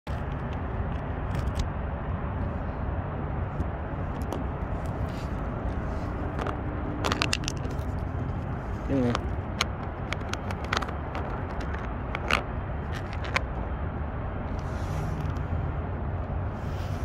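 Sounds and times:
car engine idling: 0:02.4 - 0:16.6
phone handling clicks and rubbing: 0:03.6 - 0:13.6.

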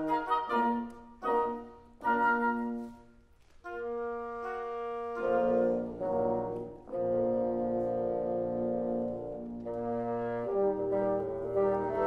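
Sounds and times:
wind ensemble holding a chord: 0:00.0 - 0:03.1, 0:03.7 - 0:12.0.

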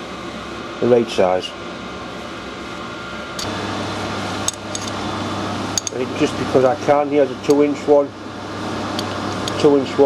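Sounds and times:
machine-shop hum: 0:00.0 - 0:10.0.

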